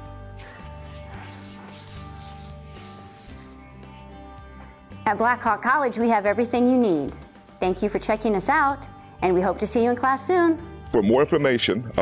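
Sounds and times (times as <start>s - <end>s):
soft background music: 0.0s - 12.0s
eraser rubbing on whiteboard: 0.4s - 3.7s.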